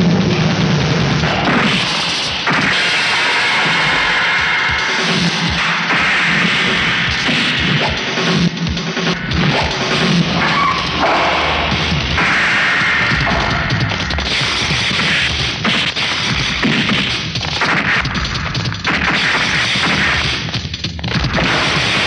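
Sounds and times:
action background score: 0:00.0 - 0:22.0.

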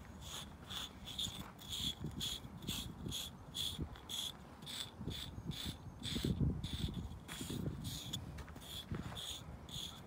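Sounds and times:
brush rubbing horse's coat: 0:06.8 - 0:10.0.

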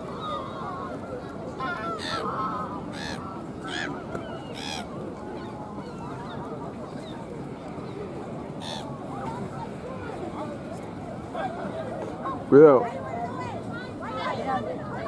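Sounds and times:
murmur of distant voices: 0:00.0 - 0:15.0.

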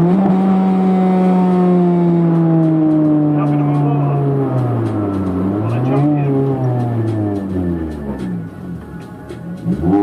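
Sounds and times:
car engine drone from inside: 0:00.0 - 0:10.0
music with vocals: 0:04.7 - 0:10.0.

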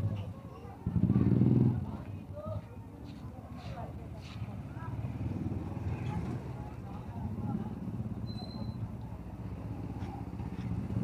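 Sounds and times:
people's voices: 0:00.0 - 0:08.1.

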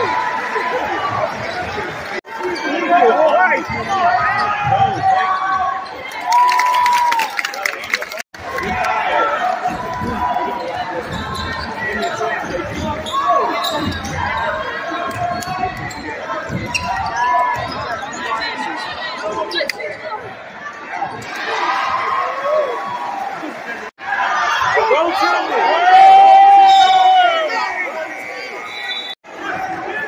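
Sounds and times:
crowd calling out in hall: 0:00.0 - 0:19.6, 0:20.6 - 0:30.0.

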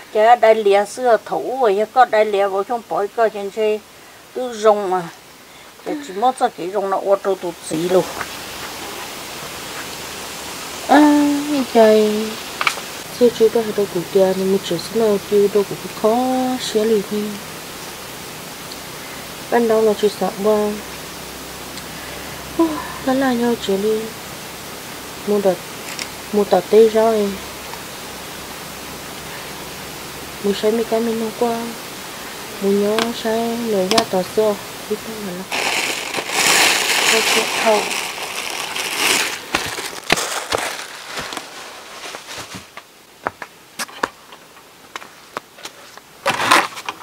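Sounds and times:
woman speaking: 0:00.0 - 0:03.8, 0:04.4 - 0:05.2, 0:05.8 - 0:08.2, 0:10.9 - 0:12.4, 0:13.1 - 0:17.4, 0:19.5 - 0:20.9, 0:22.6 - 0:24.2, 0:25.2 - 0:25.6, 0:26.3 - 0:27.5, 0:30.4 - 0:31.8, 0:32.5 - 0:39.2
steady hiss: 0:00.0 - 0:47.0.

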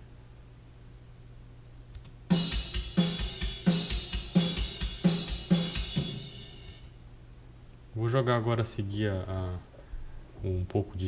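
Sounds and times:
cymbals ringing: 0:02.3 - 0:06.8
heavy snare hits: 0:02.3 - 0:06.8.

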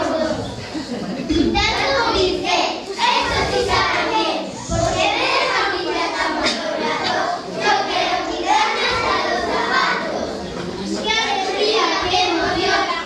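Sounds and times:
young children chattering: 0:00.0 - 0:13.0.

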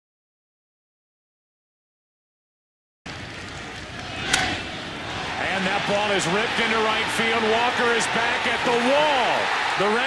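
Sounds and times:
crowd noise: 0:03.1 - 0:10.0.

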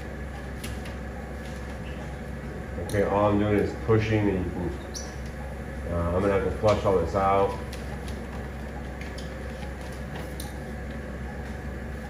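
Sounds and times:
equipment humming: 0:00.0 - 0:12.0.

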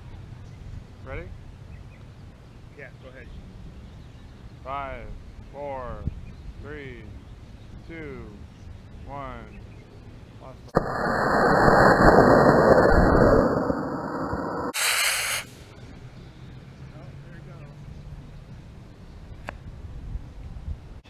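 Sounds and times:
model rocket motor blast: 0:10.8 - 0:15.6.

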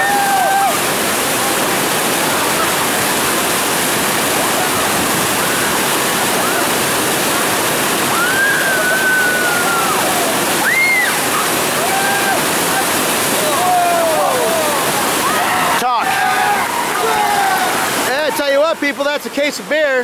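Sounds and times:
people yelling: 0:00.0 - 0:00.9, 0:08.1 - 0:18.7
rushing churning water: 0:00.0 - 0:20.0.

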